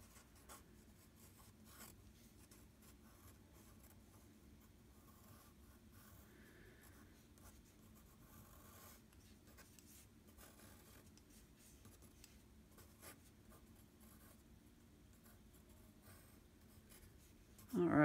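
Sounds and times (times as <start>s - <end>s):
pencil scratching on paper: 0.0s - 6.3s, 6.9s - 18.0s.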